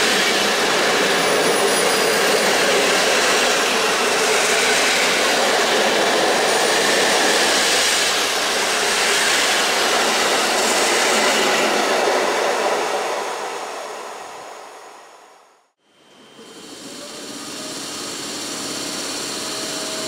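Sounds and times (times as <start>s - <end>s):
passenger train passing at speed: 0.0s - 20.0s.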